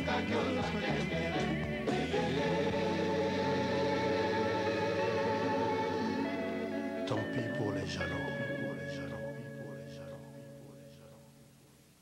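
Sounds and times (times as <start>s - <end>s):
rumba music sustained chord: 0.0s - 11.5s.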